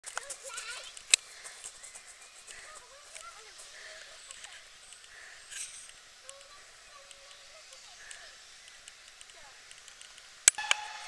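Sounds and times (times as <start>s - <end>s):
high-pitched voices talking: 0.0s - 1.0s, 2.5s - 5.3s, 6.1s - 8.4s
sharp click: 9.1s - 10.9s.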